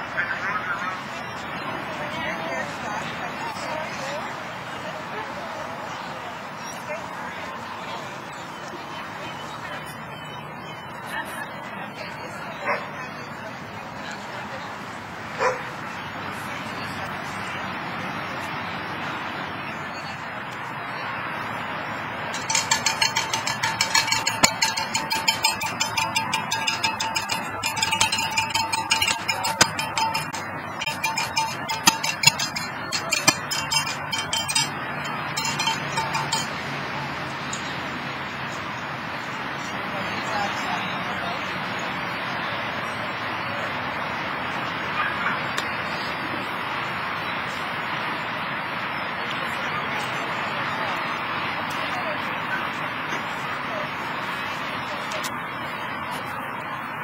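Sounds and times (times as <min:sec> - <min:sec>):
steady background noise: 0:00.0 - 0:57.0
dog barking: 0:12.6 - 0:12.9, 0:15.4 - 0:15.7
metallic jingling and clinking: 0:22.3 - 0:36.6
faint steady high tone: 0:22.4 - 0:37.7.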